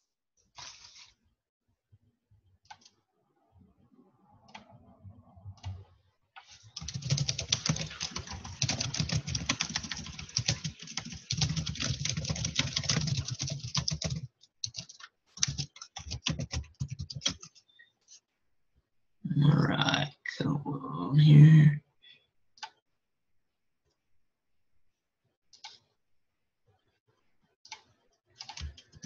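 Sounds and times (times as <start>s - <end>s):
typing on keyboard: 6.4s - 17.7s, 27.7s - 29.0s.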